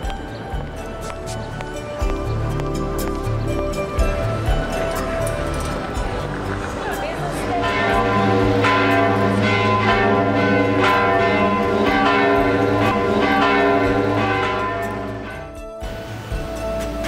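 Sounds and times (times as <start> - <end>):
church bells ringing: 0.0 - 15.9.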